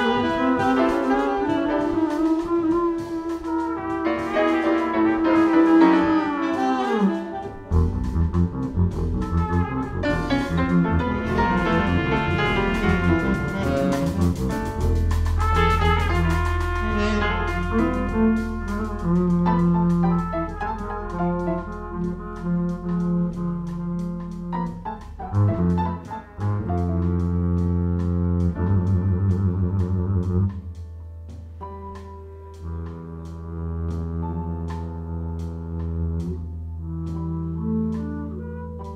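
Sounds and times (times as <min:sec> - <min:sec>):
jazz band playing: 0:00.0 - 0:38.9.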